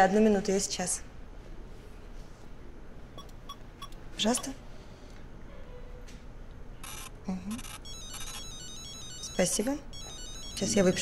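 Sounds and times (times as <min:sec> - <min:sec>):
phone ringtone beeping melody: 0:06.9 - 0:11.0.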